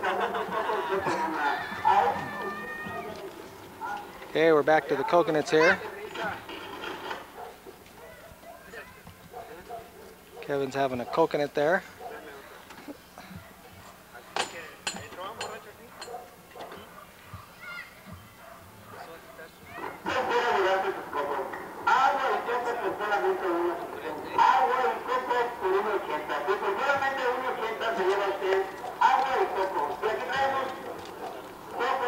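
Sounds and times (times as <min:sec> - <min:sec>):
people talking: 0:00.0 - 0:06.5, 0:20.0 - 0:32.0.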